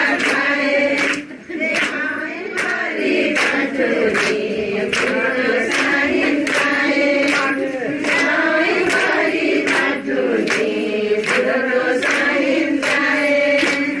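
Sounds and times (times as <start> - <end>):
women singing together: 0.0 - 14.0.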